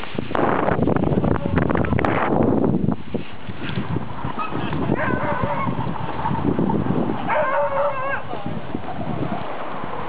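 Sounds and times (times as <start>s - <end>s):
dogsled rumbling on snow: 0.0s - 10.0s
dogs yelping: 4.2s - 9.6s.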